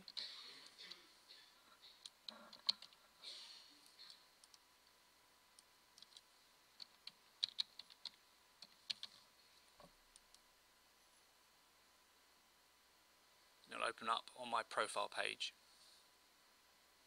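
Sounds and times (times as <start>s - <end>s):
computer keyboard typing: 2.0s - 3.0s, 6.0s - 9.2s.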